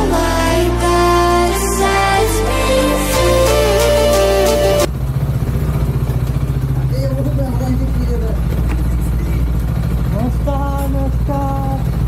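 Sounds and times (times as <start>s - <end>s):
motorcycle engine idling: 4.9s - 12.0s.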